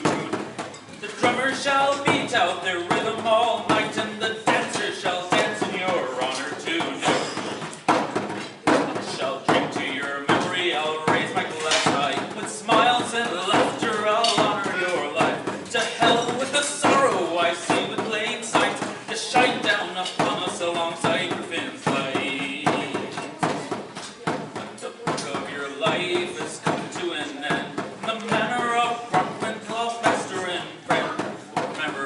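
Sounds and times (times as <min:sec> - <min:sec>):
frame drum beats: 0:00.0 - 0:32.0
man singing a slow ballad: 0:01.0 - 0:07.6, 0:08.8 - 0:23.4, 0:24.8 - 0:32.0.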